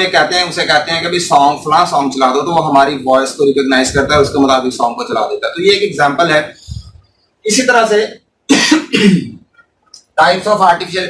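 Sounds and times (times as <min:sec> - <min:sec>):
man coughing and clearing throat: 0:08.5 - 0:09.6.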